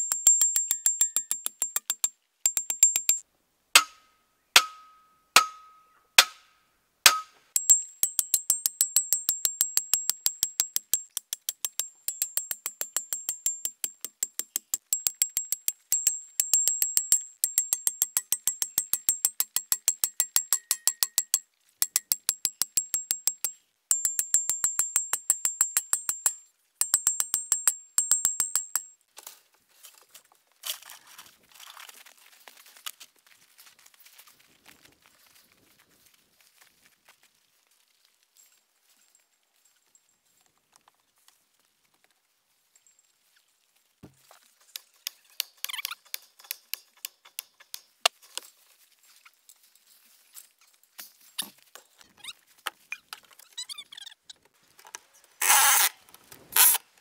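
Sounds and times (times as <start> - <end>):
sledgehammer clanging on metal post: 0.0 - 3.2, 3.8 - 6.4, 7.1 - 28.8.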